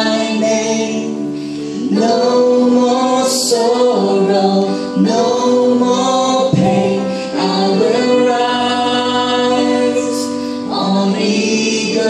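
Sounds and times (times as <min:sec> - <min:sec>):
man and woman singing in harmony: 0:00.0 - 0:12.0
band accompaniment: 0:06.5 - 0:07.3.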